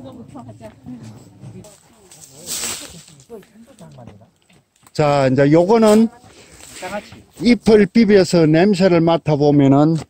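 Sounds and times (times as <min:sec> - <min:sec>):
faint chatter of people: 0:00.0 - 0:07.5
short hiss: 0:02.4 - 0:03.1.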